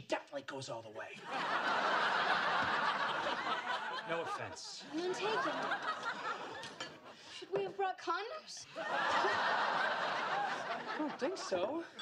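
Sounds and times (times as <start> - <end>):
studio audience laughing: 1.2 - 7.2, 8.7 - 11.8.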